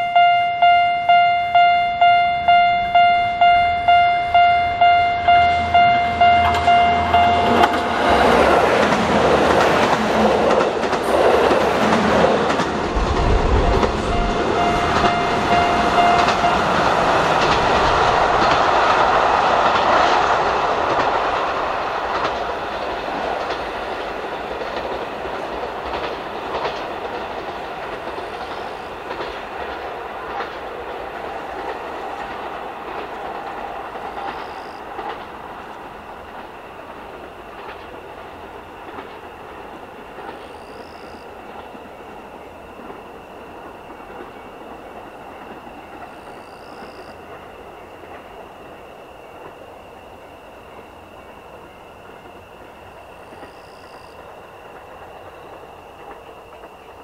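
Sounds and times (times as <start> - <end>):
diesel train engines: 0.0 - 57.0
train wheels clattering on rails: 0.6 - 57.0.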